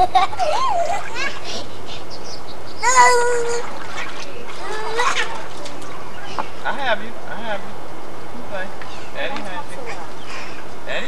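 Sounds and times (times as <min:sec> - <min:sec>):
child crying out: 0:02.8 - 0:03.7
water splashing in paddling pool: 0:02.8 - 0:06.6.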